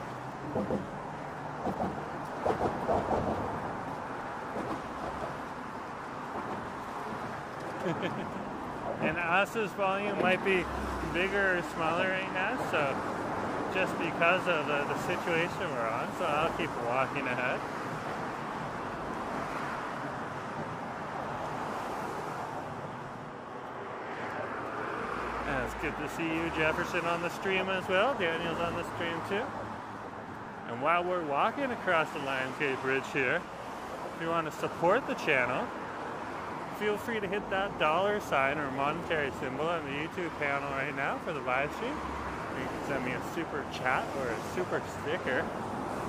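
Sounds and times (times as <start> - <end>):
road traffic noise: 0.0 - 46.0.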